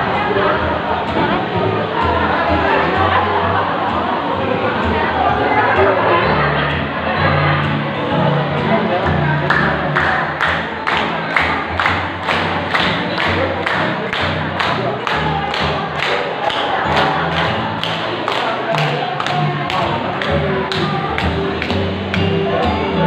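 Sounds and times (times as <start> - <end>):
music with quick beat and bass: 8.6 - 23.0.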